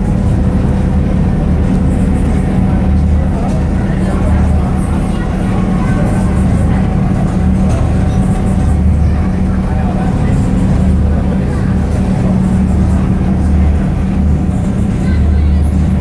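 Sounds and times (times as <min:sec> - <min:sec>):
boat engine drone: 0:00.0 - 0:16.0.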